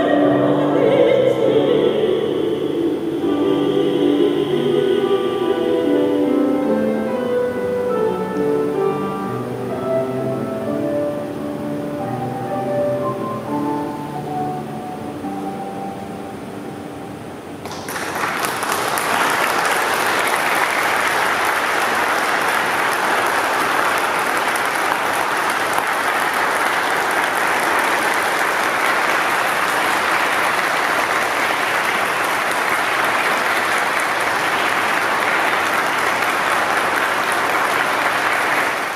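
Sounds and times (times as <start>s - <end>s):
piano chord: 0.0s - 17.8s
audience applauding: 17.6s - 38.9s.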